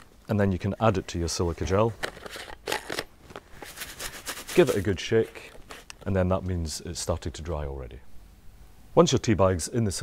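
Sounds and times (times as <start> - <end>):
beads crackling clicks and rustles: 2.0 - 6.0.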